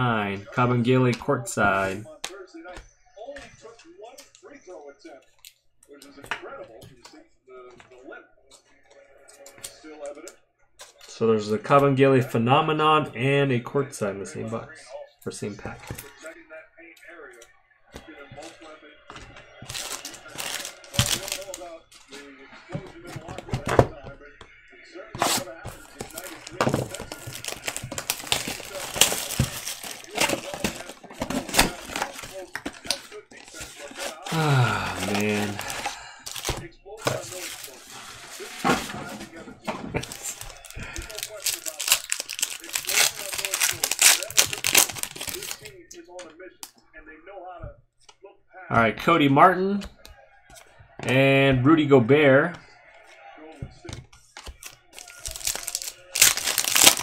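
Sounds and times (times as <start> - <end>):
cards being handled: 18.0 - 23.9, 25.1 - 45.8, 53.9 - 57.0
card packs torn open: 19.6 - 22.2, 25.2 - 39.4, 40.0 - 45.8, 54.4 - 57.0
wrappers crinkling: 19.6 - 22.2, 25.2 - 45.8, 54.5 - 57.0.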